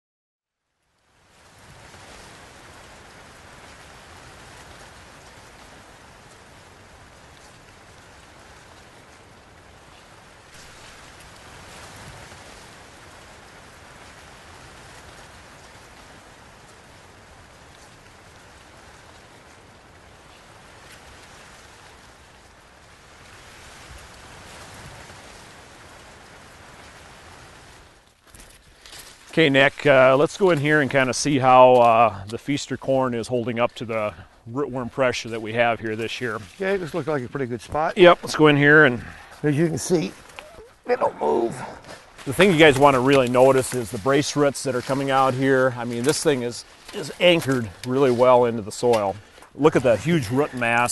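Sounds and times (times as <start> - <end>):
steady rushing noise: 29.1 - 50.9.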